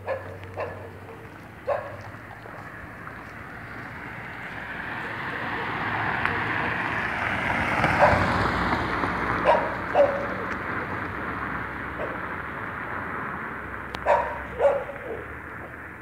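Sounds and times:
dog barking: 0.0s - 2.6s, 4.9s - 7.0s, 7.9s - 8.5s, 9.3s - 11.0s, 12.0s - 12.3s, 14.0s - 15.8s.

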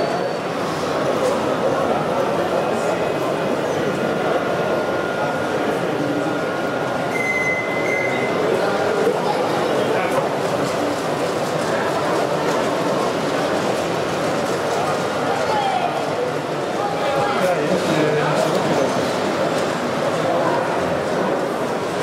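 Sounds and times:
chatter of many voices: 0.0s - 22.0s.

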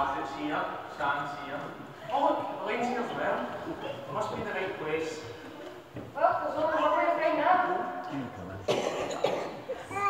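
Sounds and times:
person coughing: 8.7s - 9.7s.

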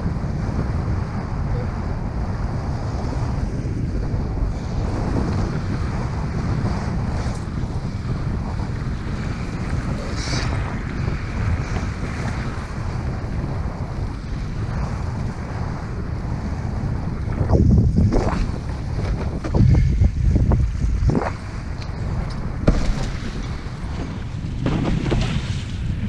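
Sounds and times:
wind buffeting microphone: 0.0s - 26.0s
water rushing against board: 4.4s - 26.0s.

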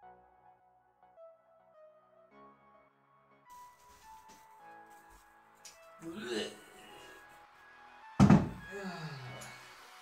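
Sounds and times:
heavy thunk on wooden workbench: 8.2s - 8.6s.

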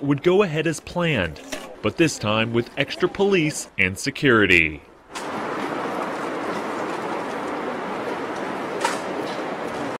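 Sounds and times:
city street background noise: 0.0s - 9.9s.

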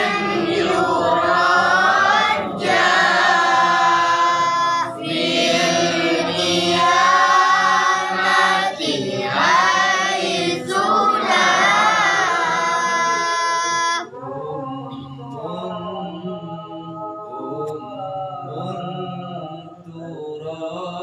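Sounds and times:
group reciting in unison: 0.0s - 21.0s
lower voice singing: 0.0s - 21.0s.

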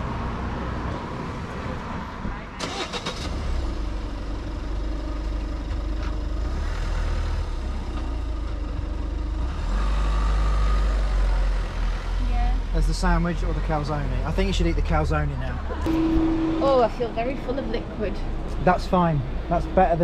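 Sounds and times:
traffic engine rumble: 0.0s - 20.0s.

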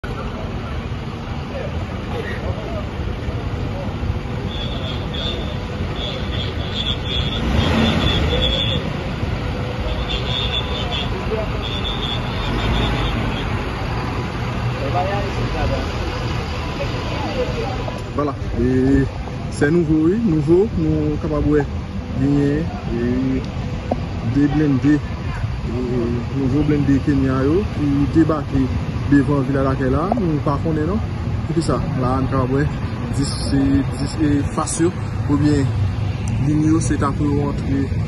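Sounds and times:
people talking: 0.0s - 4.1s, 14.7s - 38.0s
vehicle engines idling: 0.0s - 38.0s.

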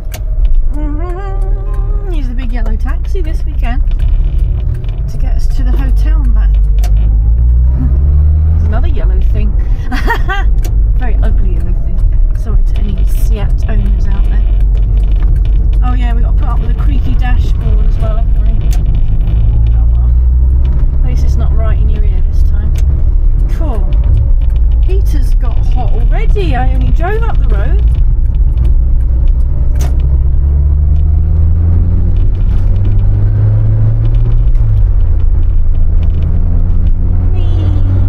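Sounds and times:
car engine rumble while driving: 0.0s - 38.0s.

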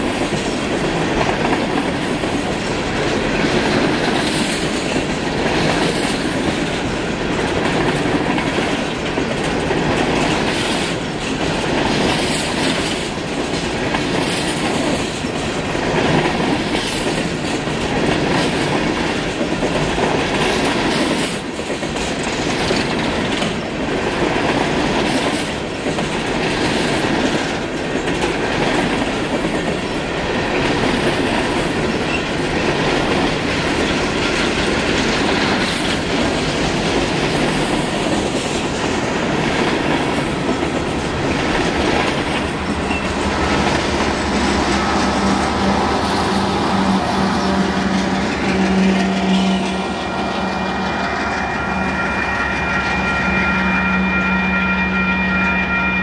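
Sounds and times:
wheels clicking over rail joints: 0.0s - 52.7s
train wheels rumbling on rail: 0.0s - 56.0s.

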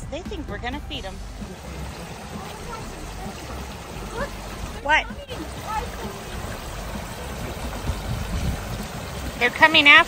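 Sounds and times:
water rushing through channels: 0.0s - 10.0s.

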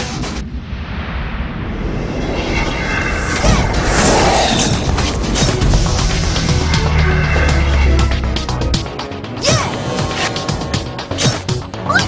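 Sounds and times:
deep rumbling boom: 0.4s - 9.4s
sharp impact hits: 0.6s - 9.4s.

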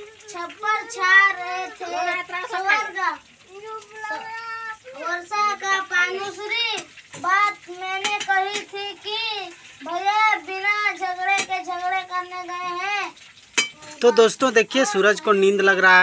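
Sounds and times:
boy chanting reading aloud: 0.0s - 13.2s, 13.8s - 16.0s.

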